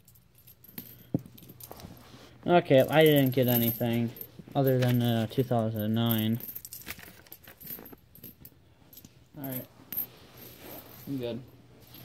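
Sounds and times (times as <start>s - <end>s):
coins clinking: 2.8s - 12.0s.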